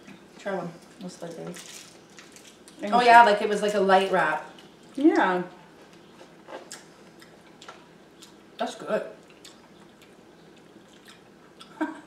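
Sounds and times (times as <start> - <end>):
candy wrappers rustling: 1.2 - 2.8.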